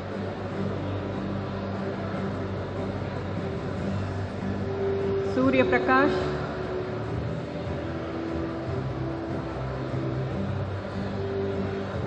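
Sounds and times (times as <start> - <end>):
low hum with shifting tones: 0.0 - 12.0.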